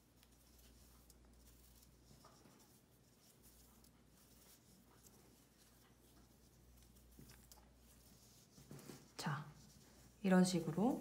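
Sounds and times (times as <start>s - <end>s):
cord rustling and ticking: 0.0s - 11.0s.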